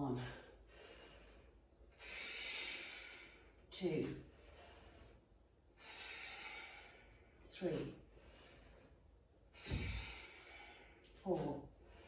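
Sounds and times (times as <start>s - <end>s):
woman exhaling through the nose: 9.6s - 11.0s.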